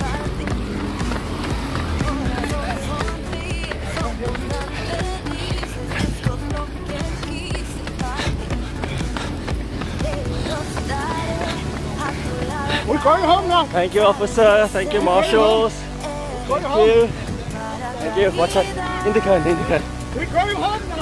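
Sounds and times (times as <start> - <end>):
music with singing voice: 0.0 - 21.0
running footsteps: 0.0 - 21.0.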